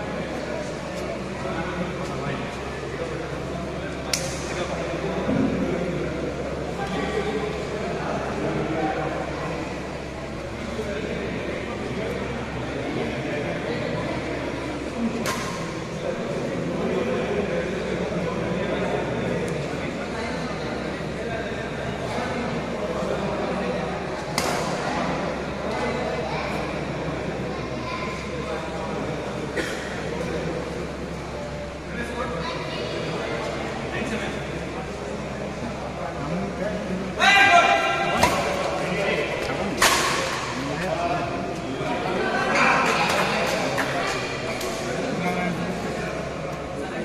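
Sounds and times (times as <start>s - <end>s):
chatter of voices in a hall: 0.0s - 47.0s
racket hitting shuttlecock: 38.2s - 38.7s.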